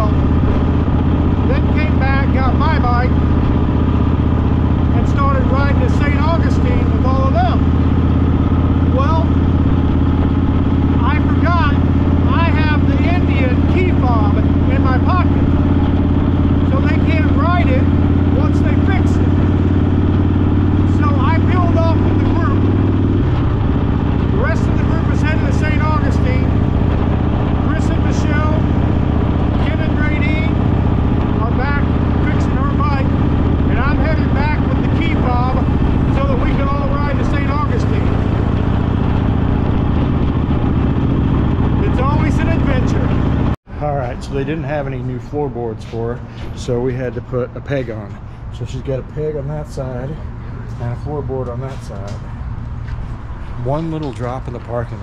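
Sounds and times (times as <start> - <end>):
man talking: 0.0 - 0.3, 1.4 - 3.2, 4.9 - 7.8, 8.9 - 9.5, 10.9 - 15.7, 16.6 - 19.7, 20.8 - 22.8, 24.2 - 28.8, 29.5 - 38.4, 41.8 - 43.2, 43.8 - 52.2, 53.4 - 55.0
rushing wind: 0.0 - 44.4
motorcycle engine drone: 0.0 - 55.0.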